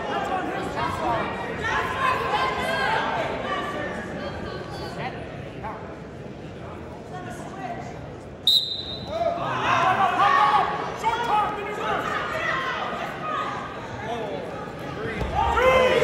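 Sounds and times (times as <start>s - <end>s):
referee's whistle blast: 8.4s - 9.1s.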